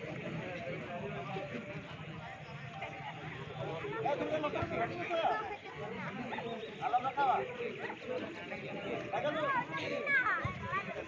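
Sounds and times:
spectators chattering and calling out: 0.0 - 11.0.

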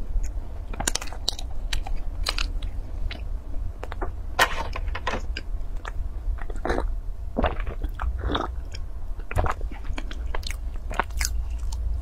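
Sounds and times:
lip and teeth clicks: 0.2 - 4.0, 5.4 - 11.9
biting and chewing pastry: 0.2 - 4.1, 5.2 - 12.0.

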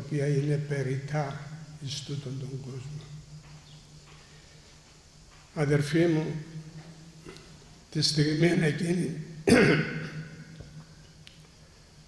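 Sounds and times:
man clearing his throat: 9.5 - 10.3.

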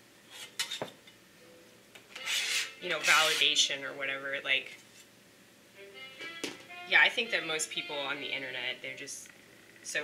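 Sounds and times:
kitchen utensil scraping surface: 0.3 - 0.9, 2.1 - 3.7.

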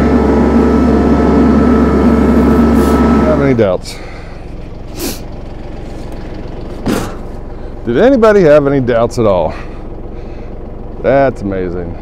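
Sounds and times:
tractor diesel engine idling: 0.0 - 12.0.

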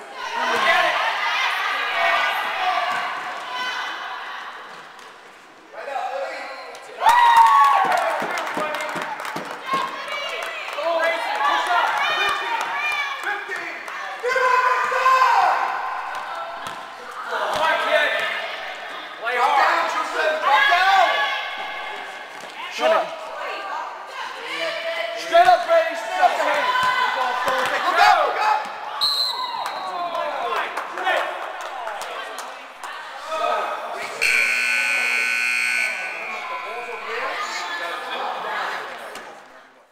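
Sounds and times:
scoreboard buzzer: 34.2 - 37.1.

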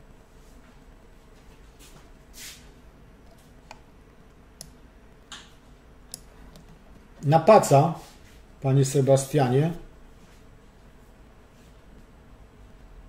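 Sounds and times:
soft hissy sounds: 0.0 - 13.0
computer mouse clicks: 3.3 - 4.8, 6.0 - 7.3.

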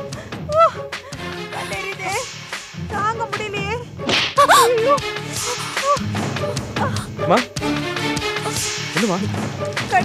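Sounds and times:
whip-crack hit: 4.0 - 4.4.

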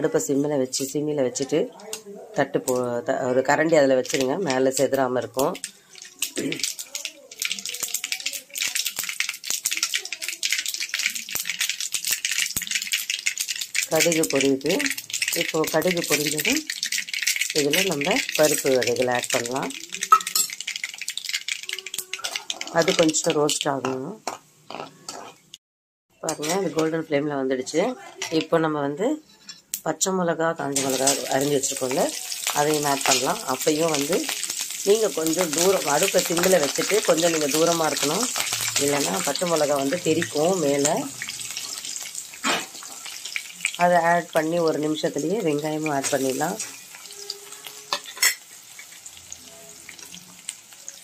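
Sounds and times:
woman talking: 0.0 - 5.6, 22.6 - 24.2, 26.2 - 29.3, 29.9 - 41.2, 43.8 - 46.7
hot oil spluttering: 3.4 - 25.6, 30.7 - 51.0
steel spatula stirring: 5.6 - 25.6, 26.3 - 27.0, 30.8 - 43.8, 45.9 - 50.4.

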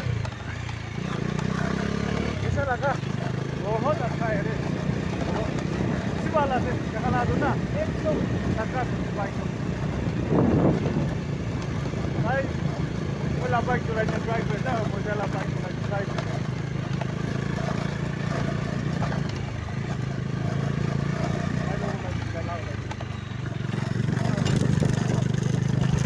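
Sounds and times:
people talking: 0.0 - 9.6, 12.1 - 16.4, 21.6 - 22.8, 24.1 - 25.6
motorcycle engine running: 0.0 - 26.0.

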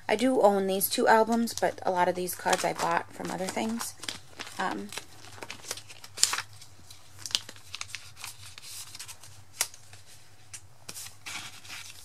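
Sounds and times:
plastic sleeves crinkling: 1.1 - 10.2.

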